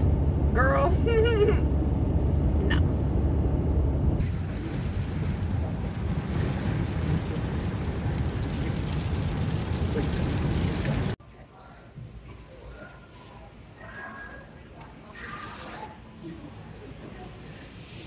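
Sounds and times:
van engine and road rumble: 0.0s - 11.2s.

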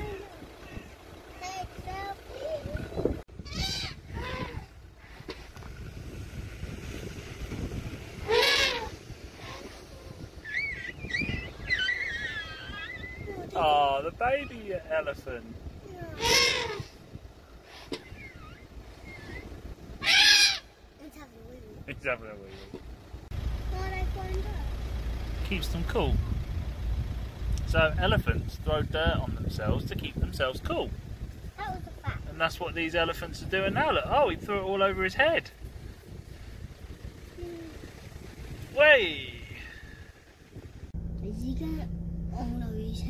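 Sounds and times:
wind rumble on microphone: 0.0s - 20.4s, 25.8s - 43.0s
loud voice-like call: 16.2s - 16.9s
car engine rumble inside cabin: 22.7s - 27.8s, 39.7s - 43.0s.

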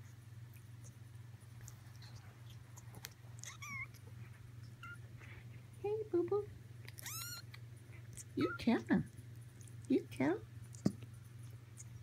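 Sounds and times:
kittens mewing: 1.9s - 4.1s, 6.8s - 8.6s.

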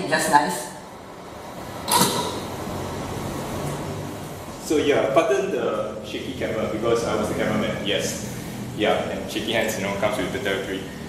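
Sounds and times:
sharp click: 1.9s - 2.4s.

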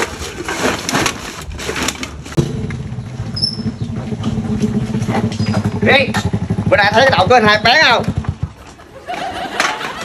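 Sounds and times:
cans and bottles clinking in sack: 0.0s - 2.4s
motorbike engine puttering: 0.5s - 10.0s.

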